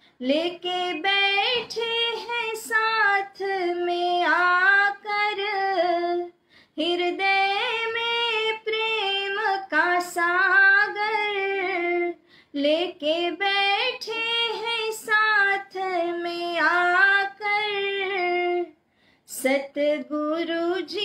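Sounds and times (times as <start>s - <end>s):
woman singing devotional song: 0.0s - 21.0s.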